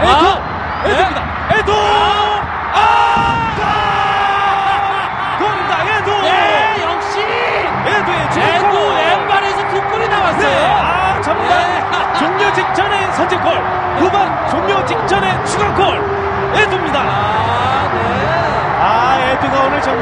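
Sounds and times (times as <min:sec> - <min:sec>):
stadium crowd cheering: 0:00.0 - 0:20.0.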